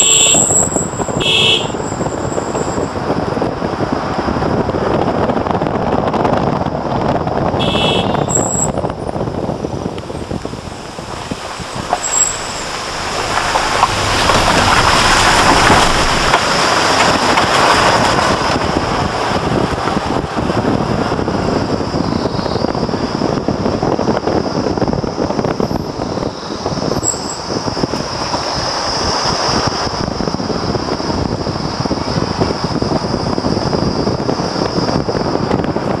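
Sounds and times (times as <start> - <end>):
vehicle engine tyre and wind noise: 0.0 - 36.0.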